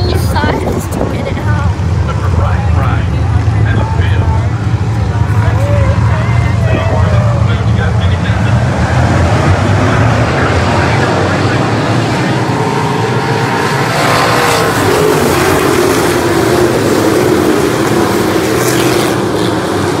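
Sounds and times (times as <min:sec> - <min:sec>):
race car engines running hard: 0:00.0 - 0:20.0.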